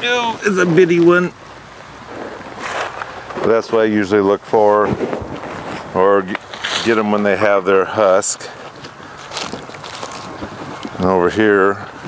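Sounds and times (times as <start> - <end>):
wind noise on microphone: 4.6 - 7.1, 8.7 - 12.0
footsteps through grass and dry leaves: 8.5 - 11.0.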